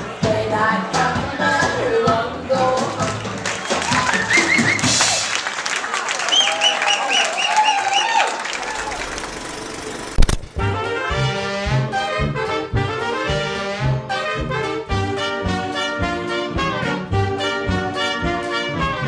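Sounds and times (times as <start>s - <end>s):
jazz band with brass: 0.0s - 5.5s, 10.6s - 19.0s
crowd voices: 0.0s - 10.2s.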